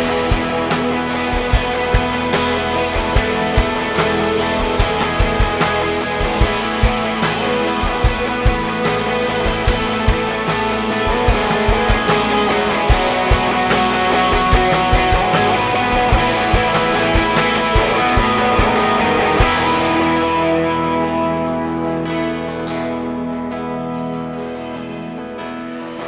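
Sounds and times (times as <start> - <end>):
drum beat: 0.0 - 20.6
worship band playing: 0.0 - 26.0.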